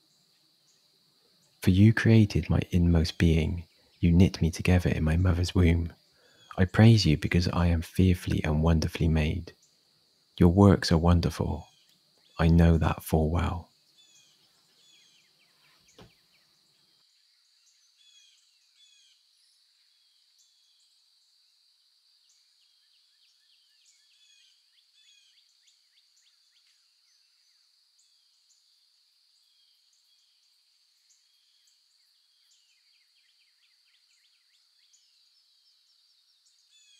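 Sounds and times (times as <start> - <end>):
small birds chirping: 0.0 - 21.4, 22.2 - 36.9
faint click: 11.8 - 12.0.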